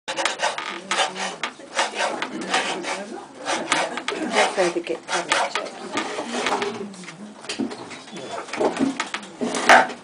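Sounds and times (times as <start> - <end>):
knife scraping wood: 0.1 - 6.8, 8.2 - 10.0.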